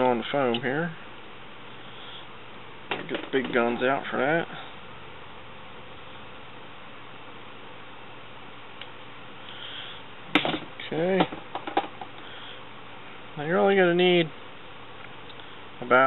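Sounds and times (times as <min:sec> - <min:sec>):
low background hiss: 0:00.0 - 0:16.0.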